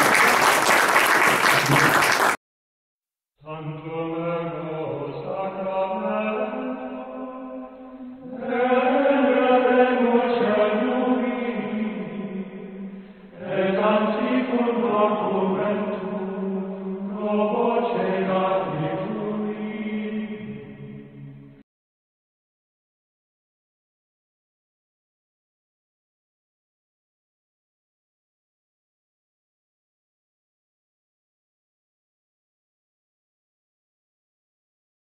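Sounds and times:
sung chant in held notes: 0:03.5 - 0:21.6.

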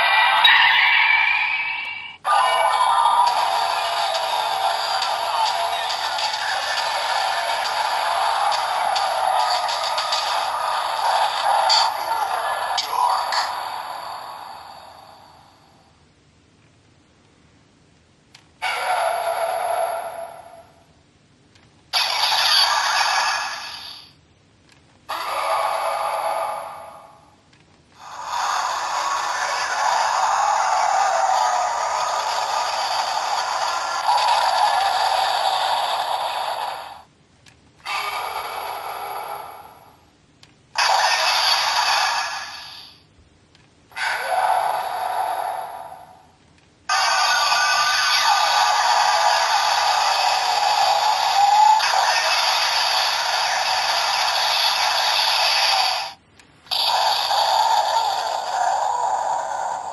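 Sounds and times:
toy electronic sound effects and music: 0:00.0 - 0:14.0, 0:46.9 - 0:59.9.

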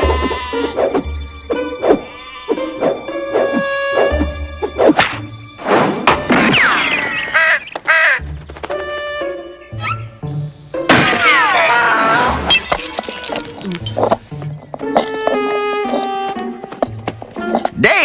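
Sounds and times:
sheep bleating: 0:00.0 - 0:00.7
cartoon background music: 0:00.0 - 0:18.0.

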